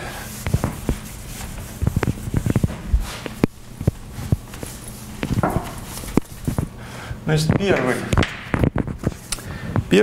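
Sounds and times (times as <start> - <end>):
chalk tapping on blackboard: 0.4 - 4.5.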